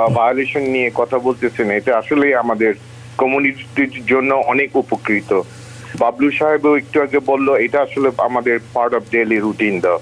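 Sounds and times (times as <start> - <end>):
faint steady hum: 0.0 - 10.0
person talking: 0.0 - 10.0.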